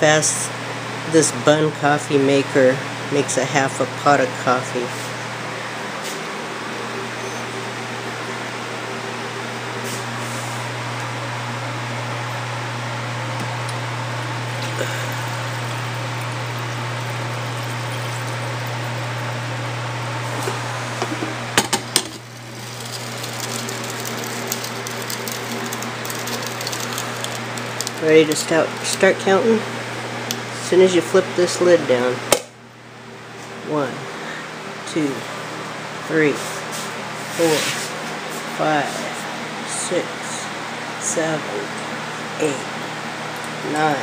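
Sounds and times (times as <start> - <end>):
low hum with hiss: 0.0 - 44.0.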